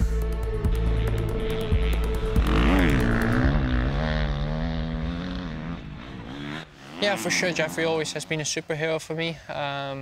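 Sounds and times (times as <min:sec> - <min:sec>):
motocross bike engine revving: 0:00.8 - 0:08.7.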